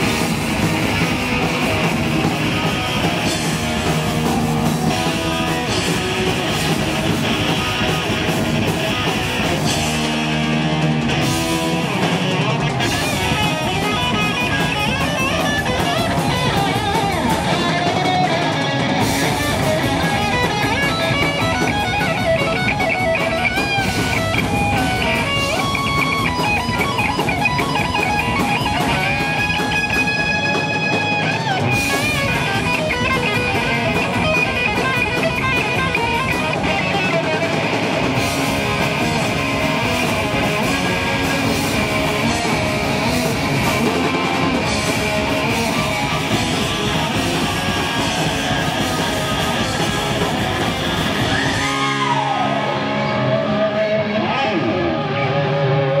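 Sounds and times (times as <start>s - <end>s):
drum kit: 0.0s - 55.3s
bass guitar: 0.0s - 56.0s
distorted electric guitars: 0.0s - 56.0s.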